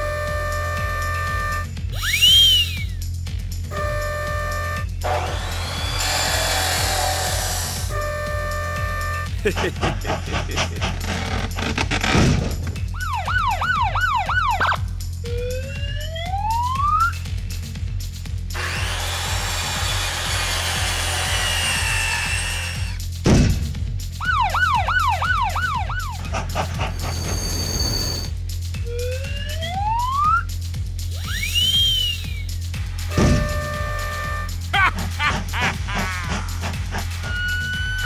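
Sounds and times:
background music with bass: 0.0 - 27.7, 28.3 - 38.0
rising whistle-like glide: 2.0 - 3.0, 26.9 - 28.4, 31.2 - 32.5, 37.2 - 38.0
circular saw running: 4.5 - 12.0, 18.5 - 23.0, 33.1 - 34.6
police siren wail: 13.0 - 17.2, 24.2 - 26.3, 28.9 - 30.4, 37.2 - 38.0.

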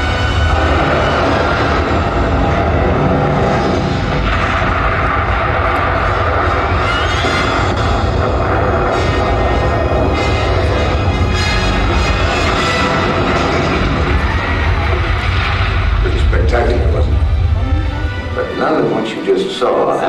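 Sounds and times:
deep rumble: 0.0 - 18.7
dramatic film soundtrack music: 0.0 - 20.0.

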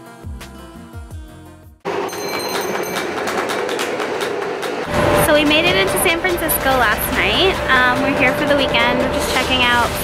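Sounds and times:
loud noisy rumble: 2.8 - 10.0
acoustic guitar music: 4.8 - 10.0.

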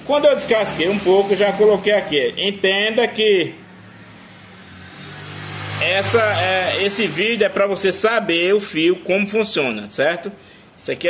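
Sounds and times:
man speaking: 0.0 - 3.6, 5.8 - 11.0
vehicle engine humming: 0.0 - 9.7.

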